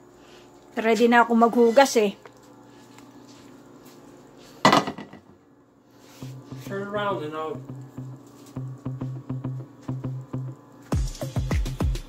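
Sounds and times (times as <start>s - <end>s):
frying pan clattering: 4.6s - 5.3s.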